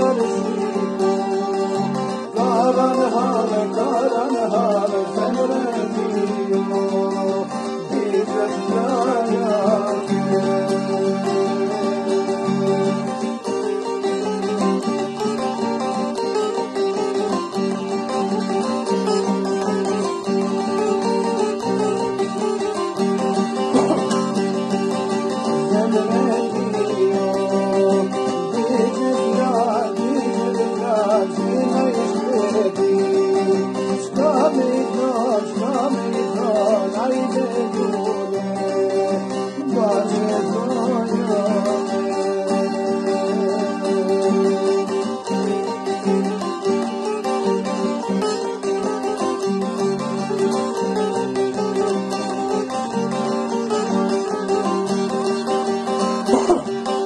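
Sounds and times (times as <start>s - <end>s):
acoustic guitar accompaniment: 0.0s - 57.0s
long-necked lute melody: 0.0s - 57.0s.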